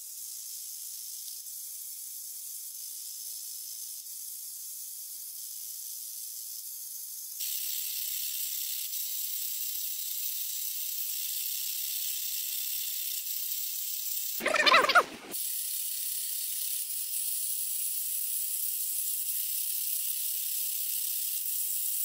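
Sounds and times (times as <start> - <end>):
loud warbling sound: 14.4 - 15.4.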